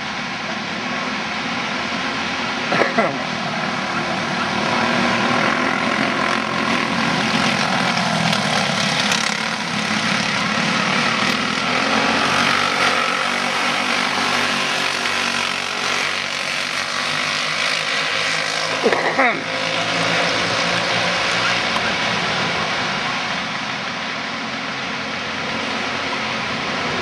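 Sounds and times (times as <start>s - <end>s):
racing kart engines high-revving drone: 0.0s - 27.0s.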